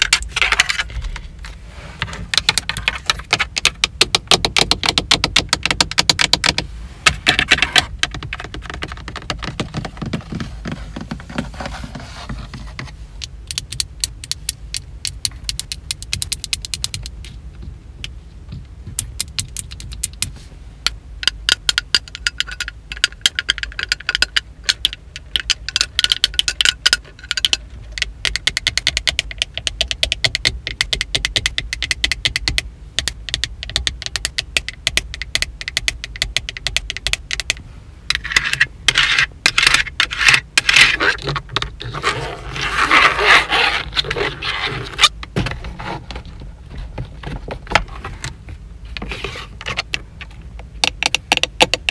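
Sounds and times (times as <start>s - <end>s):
nails scraping plastic: 0.0s - 17.4s, 21.2s - 51.9s
fingernails tapping on plastic: 2.3s - 6.6s, 50.8s - 51.9s.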